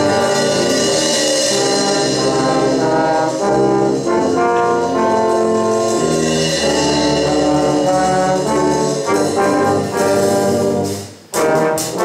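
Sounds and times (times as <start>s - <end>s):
brass band playing chords: 0.0s - 12.0s.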